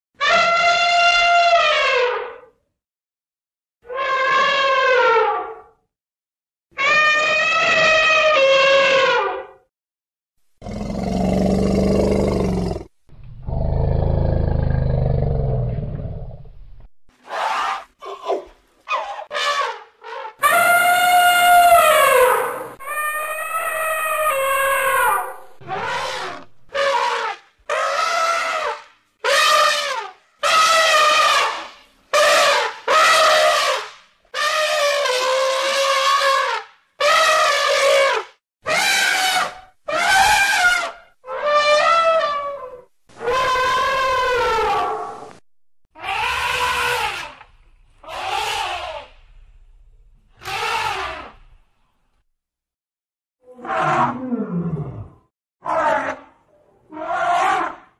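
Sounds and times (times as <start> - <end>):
elephant trumpeting: 6.8 - 9.3, 17.3 - 38.1, 38.7 - 42.6, 43.2 - 45.2, 46.0 - 49.2, 50.4 - 51.4.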